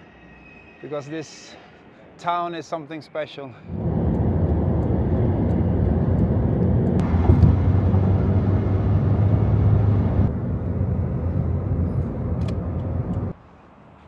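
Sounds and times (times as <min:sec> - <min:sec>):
car engine and road noise: 0:03.7 - 0:13.4.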